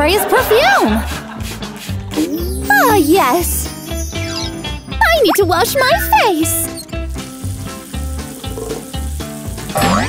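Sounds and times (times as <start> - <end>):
high sweeping tone: 2.2 - 6.8
water splashing in sink: 5.0 - 10.0.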